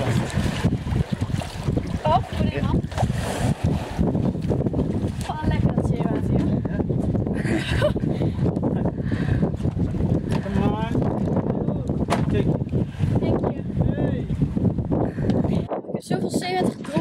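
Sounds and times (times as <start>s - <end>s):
water noise: 0.0s - 17.0s
wind: 0.0s - 17.0s.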